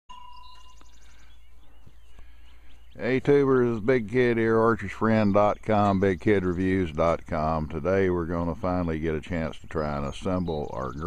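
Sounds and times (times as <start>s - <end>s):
high bird trill: 0.1s - 11.0s
small birds chirping: 0.1s - 11.0s.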